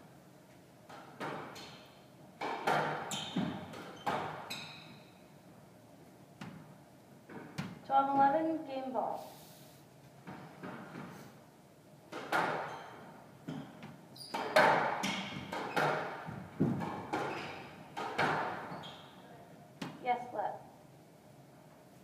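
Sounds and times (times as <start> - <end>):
squash ball strikes echoing: 13.4 - 18.7.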